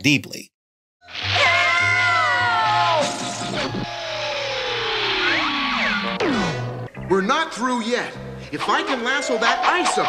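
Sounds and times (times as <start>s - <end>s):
falling cartoon tone: 1.1s - 6.7s
rising and falling chirps: 1.3s - 7.1s.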